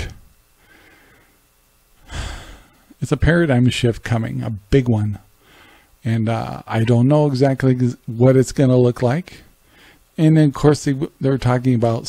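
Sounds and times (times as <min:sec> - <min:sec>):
man breathing: 0:00.6 - 0:03.0, 0:05.4 - 0:06.0, 0:09.6 - 0:10.1.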